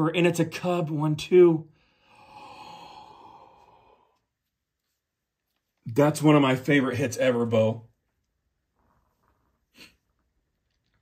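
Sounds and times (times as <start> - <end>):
man sighing: 1.9 - 4.2.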